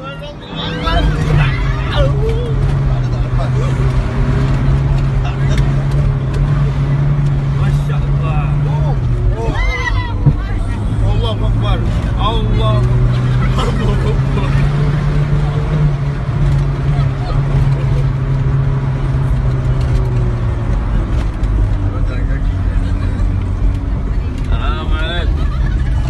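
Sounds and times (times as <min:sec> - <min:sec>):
passengers crying out: 0:00.0 - 0:03.8
van engine labouring: 0:00.0 - 0:26.0.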